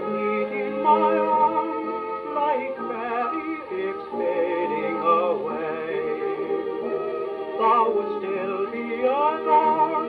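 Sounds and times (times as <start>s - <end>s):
dance band playing a waltz: 0.0s - 10.0s.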